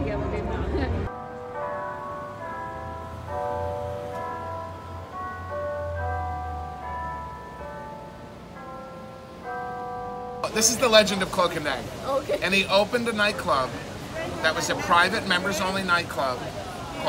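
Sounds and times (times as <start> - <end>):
bell-like chimes melody: 1.0 - 11.8.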